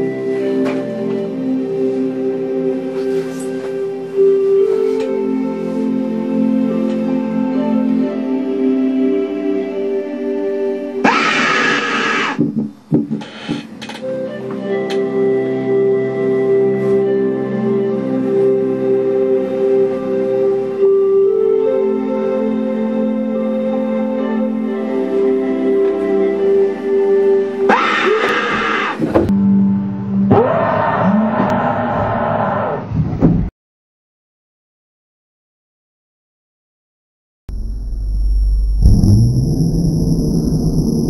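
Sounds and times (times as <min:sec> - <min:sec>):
loud scream from speakers: 0:11.0 - 0:12.4
short thumps and knocks: 0:12.4 - 0:13.2.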